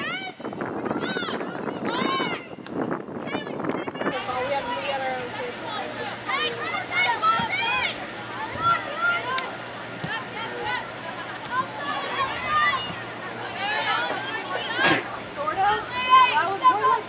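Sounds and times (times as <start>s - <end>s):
crowd talking and calling out: 0.0s - 17.0s.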